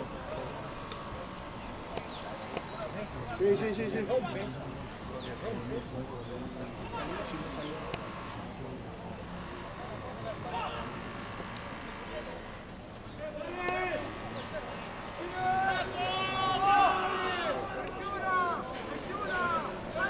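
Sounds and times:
background chatter: 0.0s - 20.0s
players shouting: 9.1s - 20.0s.

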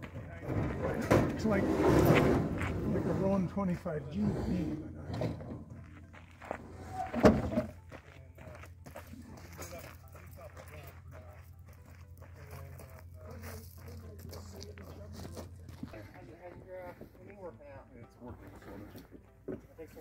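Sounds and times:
footsteps on gravel: 5.7s - 7.1s, 7.7s - 17.3s.

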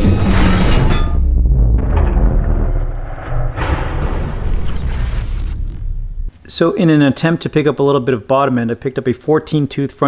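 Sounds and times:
deep low rumble: 0.0s - 6.4s
whoosh: 0.0s - 6.4s.

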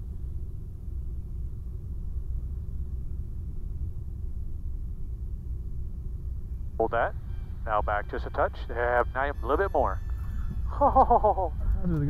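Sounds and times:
aircraft engine and propeller rumble: 0.0s - 12.0s.

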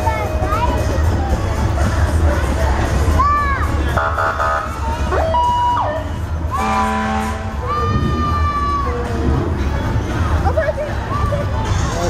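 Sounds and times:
low rumble of vehicle engines: 0.0s - 12.0s.

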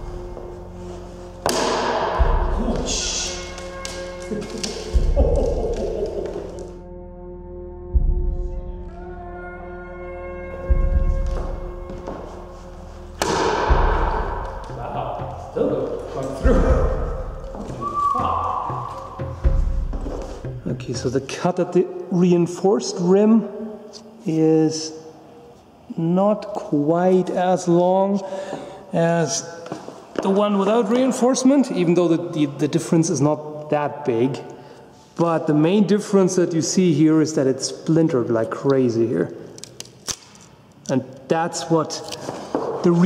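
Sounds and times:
background music: 0.0s - 43.0s
sword thuds on wooden shield: 1.4s - 2.3s, 13.2s - 14.4s.

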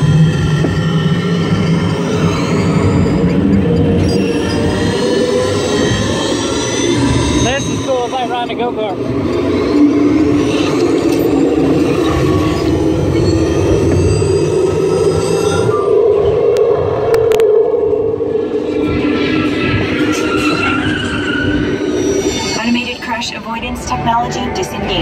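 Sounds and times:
ride vehicle rumble and hum: 0.0s - 25.0s.

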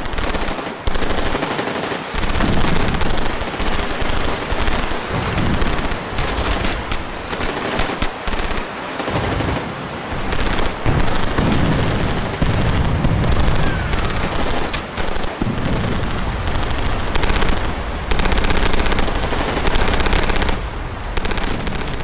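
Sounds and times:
machine-gun fire: 0.0s - 22.0s.

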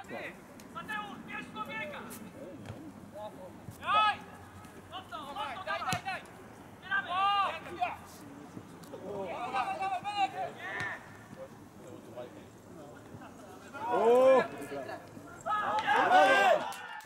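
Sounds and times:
people shouting on football pitch: 3.8s - 6.2s, 6.8s - 8.0s, 9.0s - 11.6s, 13.6s - 17.0s.

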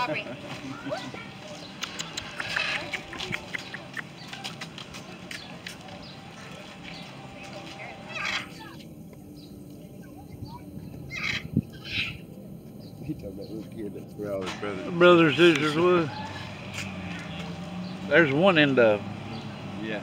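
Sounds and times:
birds calling: 0.0s - 20.0s
faint voices: 0.0s - 20.0s.

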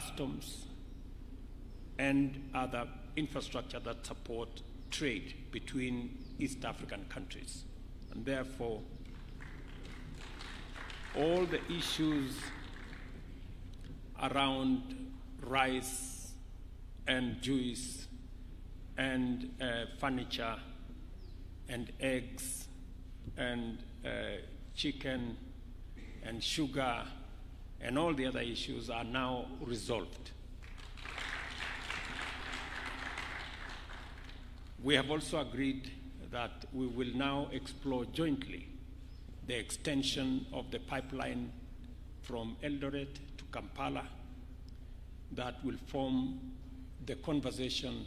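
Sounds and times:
steady low hum: 0.0s - 48.0s
audience applauding: 9.1s - 13.2s, 30.6s - 34.7s.

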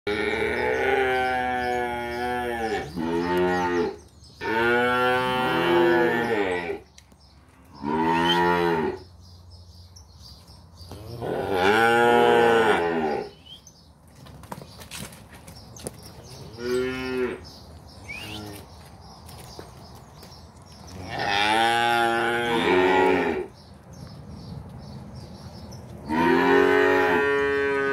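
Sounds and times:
calves mooing: 0.1s - 6.8s, 7.6s - 9.1s, 10.9s - 13.5s, 16.5s - 17.5s, 20.9s - 23.5s, 26.1s - 27.9s.

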